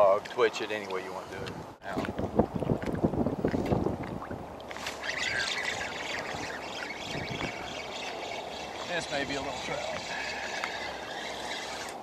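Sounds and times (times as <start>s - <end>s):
small waves lapping: 0.2s - 12.0s
wind gusting on microphone: 0.7s - 12.0s.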